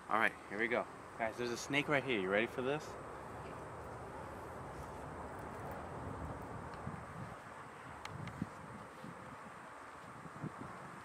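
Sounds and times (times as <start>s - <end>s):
wind noise on microphone: 4.7s - 11.0s.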